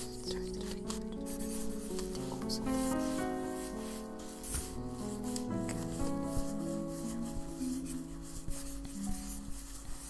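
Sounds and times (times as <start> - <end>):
calm piano music: 0.0 - 10.0
rubbing and scratching sounds: 0.0 - 10.0.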